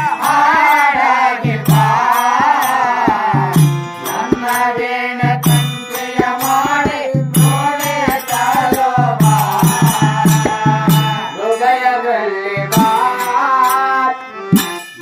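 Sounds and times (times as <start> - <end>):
tabla strokes: 0.0 - 11.6, 12.7 - 13.3
harmonium: 0.0 - 15.0
person singing: 0.0 - 15.0
hand cymbals clinking: 12.7 - 15.0.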